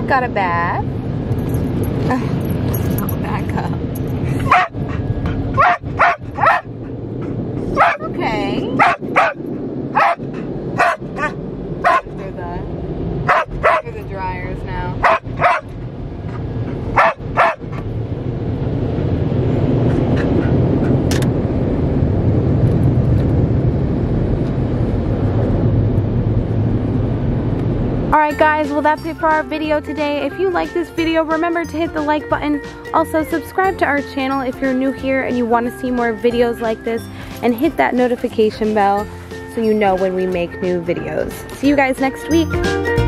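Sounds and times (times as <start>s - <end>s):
steady low rumble: 0.0s - 43.0s
dog barking and yipping: 4.4s - 7.0s, 7.6s - 8.2s, 8.8s - 12.2s, 13.3s - 13.9s, 15.0s - 15.7s, 16.3s - 17.8s.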